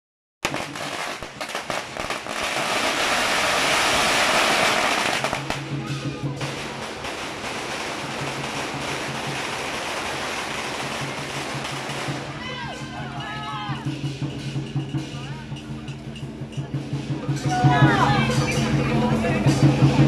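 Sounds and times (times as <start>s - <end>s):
firecrackers crackling: 0.4s - 16.2s.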